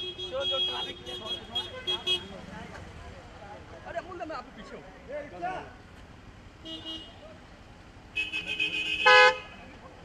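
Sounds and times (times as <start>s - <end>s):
car horns honking: 0.0s - 2.4s, 6.6s - 7.2s, 8.1s - 9.7s.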